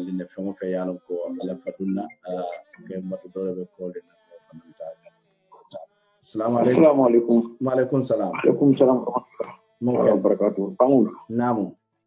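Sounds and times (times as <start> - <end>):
man speaking: 0.0 - 5.0, 5.6 - 11.8
faint steady hum: 0.0 - 11.8.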